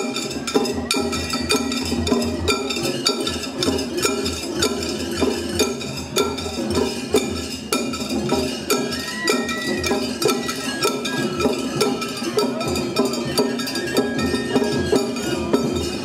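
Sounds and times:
metal hand gongs clanging: 0.0s - 16.0s
taiko drums: 0.0s - 16.0s.

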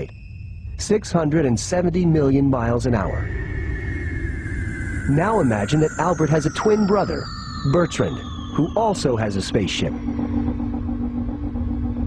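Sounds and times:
low droning hum: 0.0s - 12.0s.

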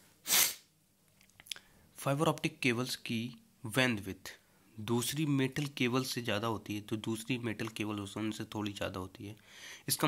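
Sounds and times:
person sneezing: 0.2s - 0.7s.

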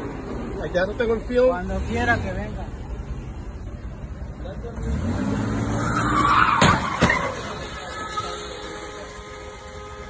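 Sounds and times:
engine revving hard: 4.8s - 6.3s
tyres squealing: 5.6s - 10.0s.

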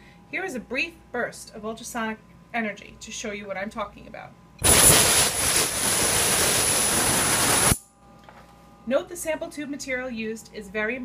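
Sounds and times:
ultrasonic cavitation hiss: 4.6s - 7.8s
high-pitched whine: 4.6s - 7.9s.

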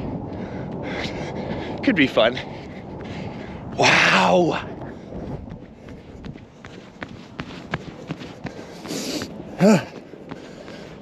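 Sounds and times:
bare feet walking on sand: 4.5s - 11.0s.

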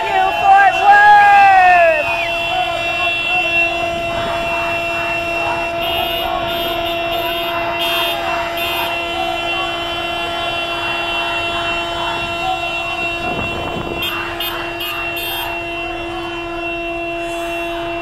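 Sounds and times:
car horn long blast: 0.0s - 18.0s
crowd voices: 0.0s - 18.0s.

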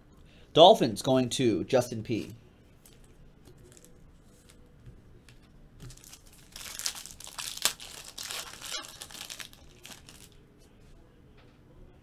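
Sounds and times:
foil wrapper tearing: 2.8s - 4.6s, 5.8s - 10.4s
foil wrapper crinkling: 2.8s - 4.7s, 5.8s - 10.4s.

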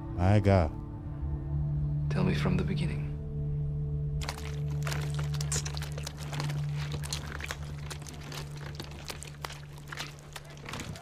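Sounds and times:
feet squelching grapes: 4.2s - 11.0s.

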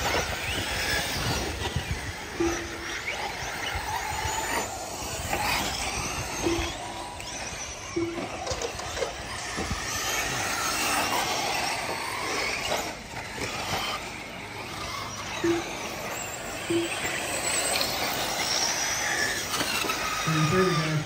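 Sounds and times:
rc car motors whining: 0.0s - 21.0s.

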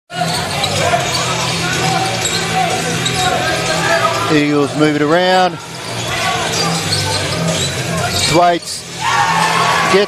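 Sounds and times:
echoing crowd chatter: 0.1s - 10.0s.

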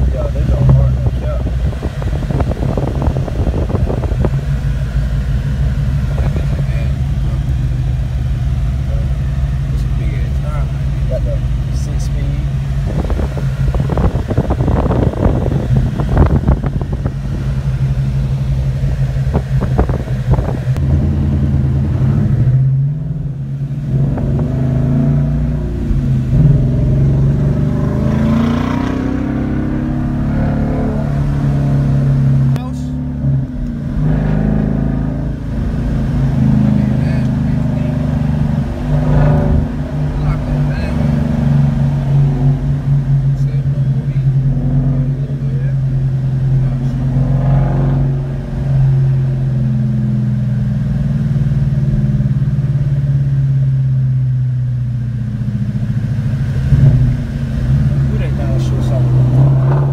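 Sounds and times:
car engine droning while driving: 0.0s - 59.9s.

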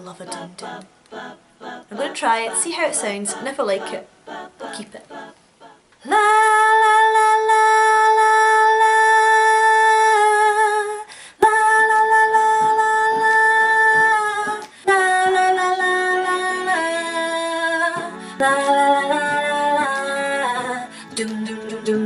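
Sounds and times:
woman singing a cappella: 0.0s - 22.0s.

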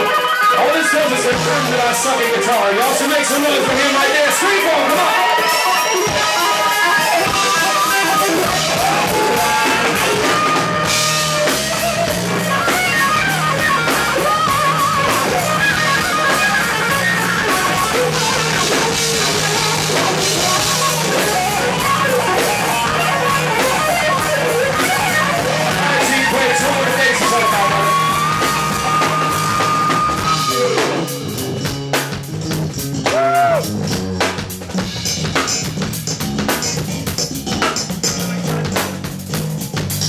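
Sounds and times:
electric guitar lead: 0.0s - 40.0s.

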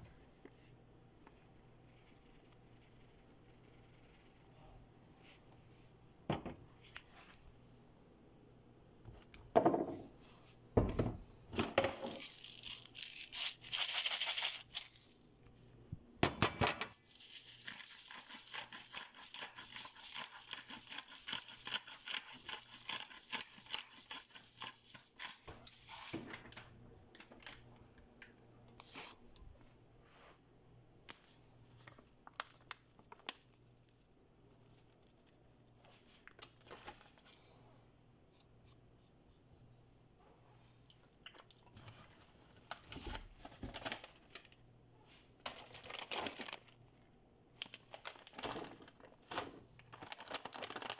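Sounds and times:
rustling and crinkling: 11.6s - 15.8s.

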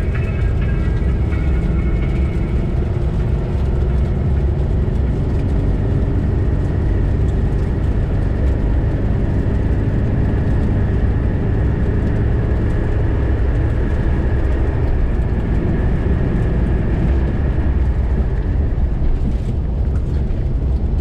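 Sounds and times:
car engine and tyre drone: 0.0s - 21.0s.

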